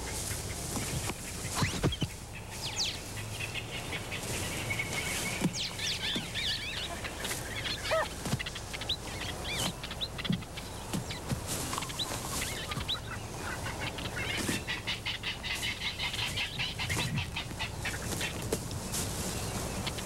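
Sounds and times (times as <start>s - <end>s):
birds chirping and calling: 0.0s - 20.0s.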